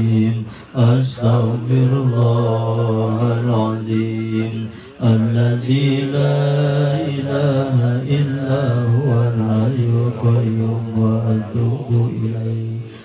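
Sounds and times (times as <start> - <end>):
man chanting prayer into microphone: 0.0 - 13.0.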